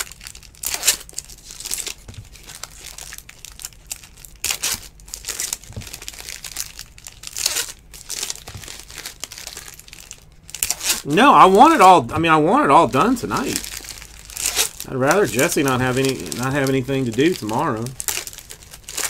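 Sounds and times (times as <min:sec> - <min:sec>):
foil wrappers crinkling and tearing: 0:00.0 - 0:19.0.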